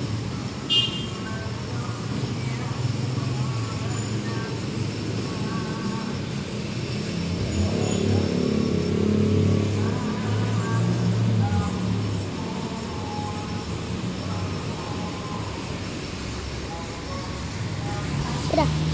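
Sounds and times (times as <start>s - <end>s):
low rumble of traffic: 0.0s - 18.9s
vehicle passing close by: 5.0s - 18.9s.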